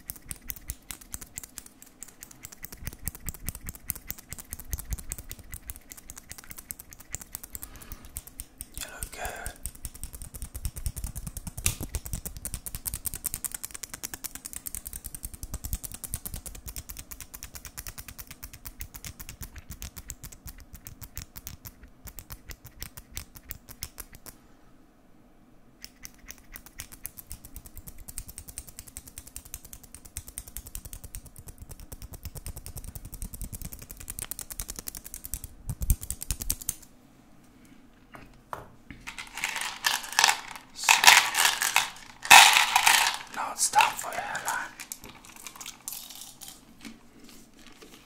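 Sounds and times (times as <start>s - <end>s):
fingers tapping on camera: 0.0s - 8.8s, 9.6s - 24.3s, 25.8s - 36.8s.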